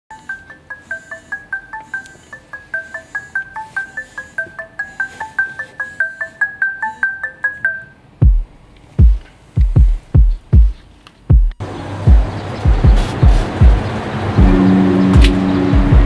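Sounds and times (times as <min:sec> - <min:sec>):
phone alarm chime melody: 0:00.1 - 0:08.1.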